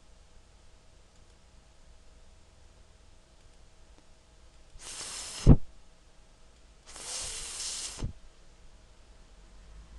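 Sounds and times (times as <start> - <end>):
person making voiceless th hiss: 4.8 - 5.6, 6.9 - 8.2.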